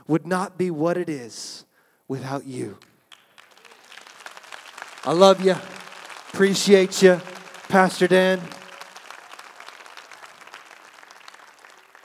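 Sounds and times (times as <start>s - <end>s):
congregation applauding: 2.9s - 12.0s.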